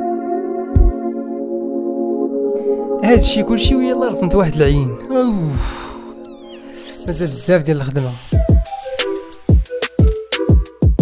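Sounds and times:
soft background music: 0.0 - 11.0
high falling chirps: 6.0 - 9.5.

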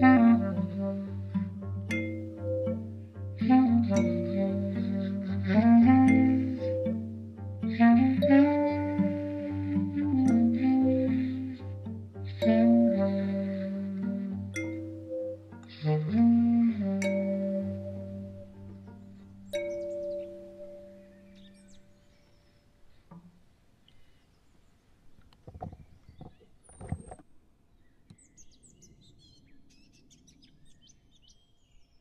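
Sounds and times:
kalimba notes: 0.0 - 21.7
held low tones: 0.0 - 21.8
birds chirping: 12.4 - 23.2, 23.8 - 32.0.

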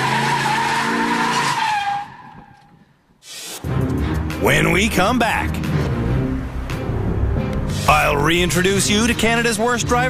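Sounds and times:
car tyres squealing: 0.0 - 3.6
car engine: 0.0 - 9.2
low music: 3.6 - 10.0.

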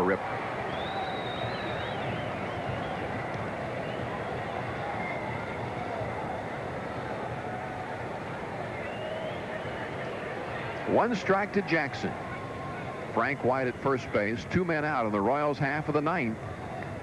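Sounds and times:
distant shouts: 0.0 - 15.1
crowd murmuring: 0.0 - 17.0.

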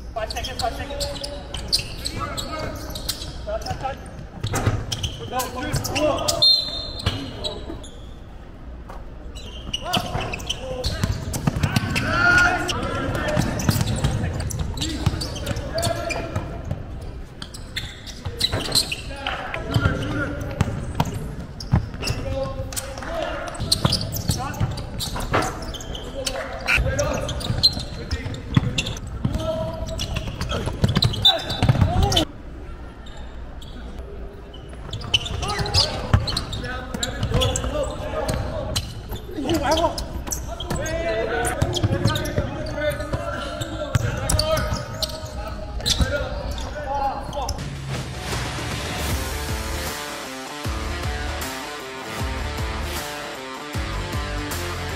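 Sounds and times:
basketball bouncing on court: 9.7 - 12.0, 13.1 - 16.8, 19.7 - 25.4, 26.9 - 32.2, 41.6 - 43.3, 43.9 - 45.1.

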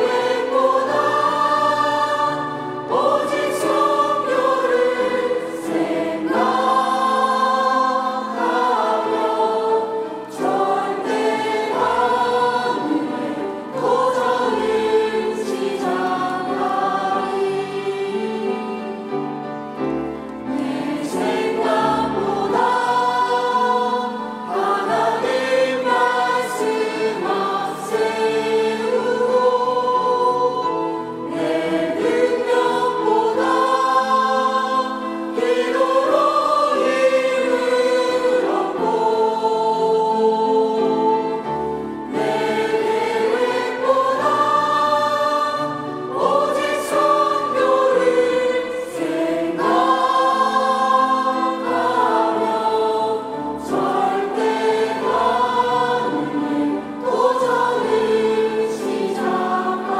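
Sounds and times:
choir singing worship song: 0.0 - 59.9.

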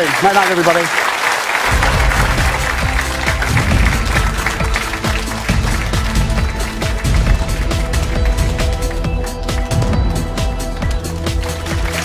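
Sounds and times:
audience applause: 0.0 - 12.0
theme music with heavy bass: 1.6 - 12.0.

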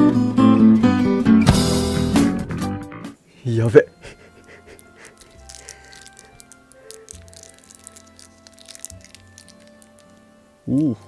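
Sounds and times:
quiet background music: 2.5 - 11.0
plastic packet crinkling: 4.5 - 10.4.

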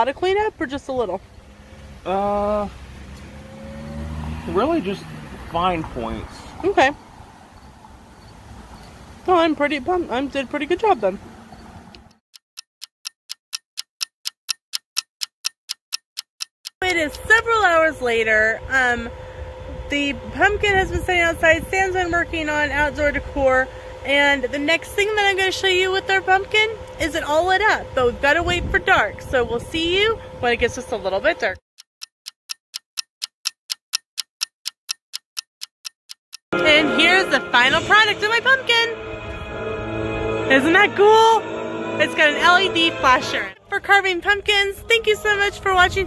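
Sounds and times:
clock ticking: 12.0 - 18.1, 24.1 - 38.5.

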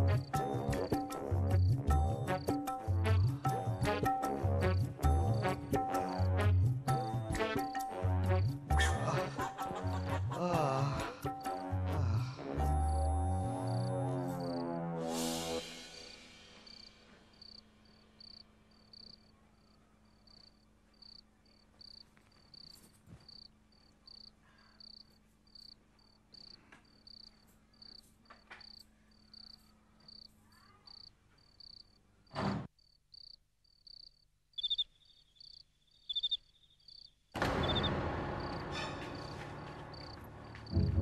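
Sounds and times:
crickets chirping: 12.6 - 14.6, 16.6 - 32.2, 32.8 - 40.9
lower-pitched cricket chirping: 12.7 - 14.6, 16.7 - 32.1, 32.8 - 38.6, 39.2 - 40.8.

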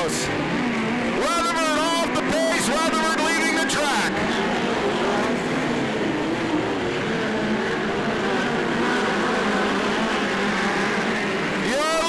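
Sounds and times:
race car engines racing: 0.0 - 12.0.

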